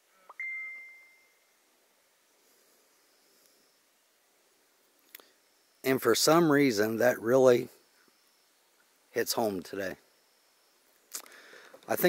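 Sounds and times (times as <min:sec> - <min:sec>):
phone notification ding: 0:00.3 - 0:01.3.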